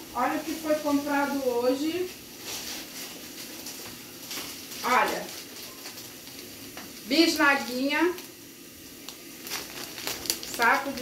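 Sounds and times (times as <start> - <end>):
plastic bag crinkling: 1.9 - 11.0.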